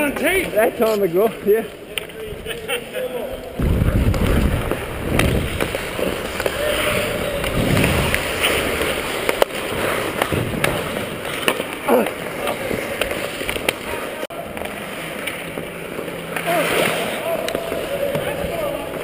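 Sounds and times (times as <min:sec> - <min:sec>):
hockey sticks and puck clacking: 0:00.0 - 0:02.8, 0:03.4 - 0:19.0
skates scraping on ice: 0:03.4 - 0:19.0.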